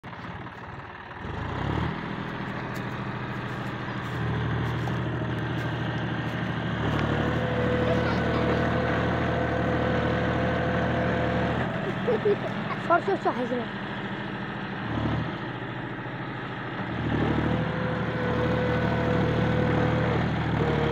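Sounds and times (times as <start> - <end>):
tractor diesel engine under load: 0.0 - 20.9.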